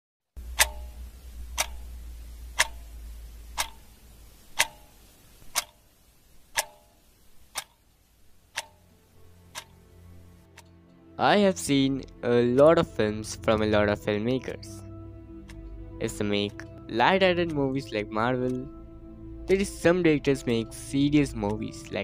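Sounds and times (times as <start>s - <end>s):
low rumble: 0.4s - 4.3s
clock ticking: 0.4s - 5.9s, 6.5s - 7.8s, 8.5s - 9.8s, 10.5s - 10.8s, 19.5s - 22.0s.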